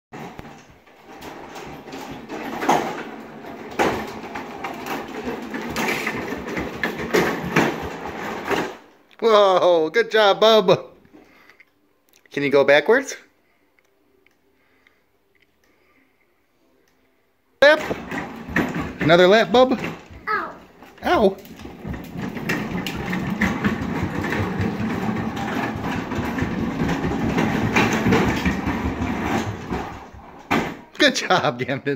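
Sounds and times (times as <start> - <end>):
plastic wheels rolling on hard floor: 0.1 - 9.0, 17.6 - 31.7.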